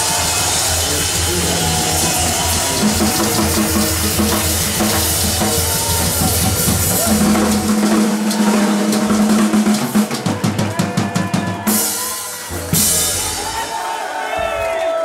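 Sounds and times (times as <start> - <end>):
drum kit: 0.0 - 14.0.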